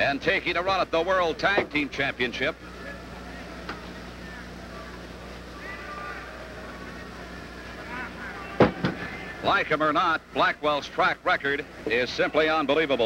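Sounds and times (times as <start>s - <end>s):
steady low hum: 0.0s - 13.0s
crowd murmuring: 1.7s - 10.8s
distant shouts: 2.6s - 10.4s.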